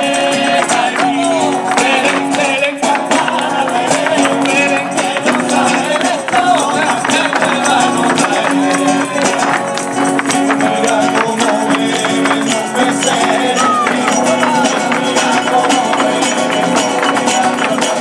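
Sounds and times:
tambourine and hand percussion: 0:00.0 - 0:18.0
voices singing: 0:00.0 - 0:18.0.

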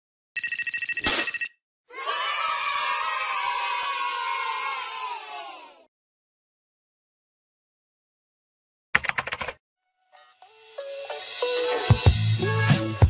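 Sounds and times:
pulsing electronic ringing: 0:00.4 - 0:01.6
crowd cheering and screaming: 0:01.9 - 0:05.8.

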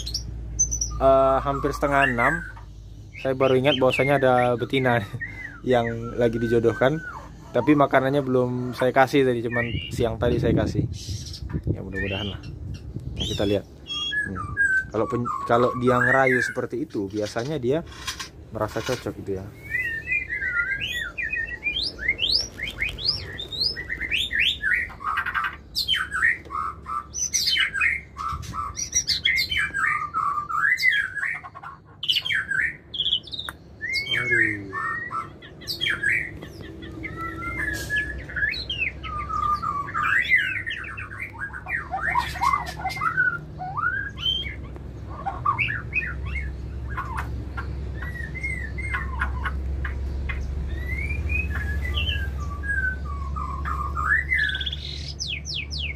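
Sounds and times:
bird singing whistled phrases: 0:00.0 - 0:08.8, 0:09.4 - 0:10.1, 0:13.2 - 0:16.7, 0:19.5 - 0:47.3, 0:47.9 - 0:49.6, 0:50.7 - 0:55.9.

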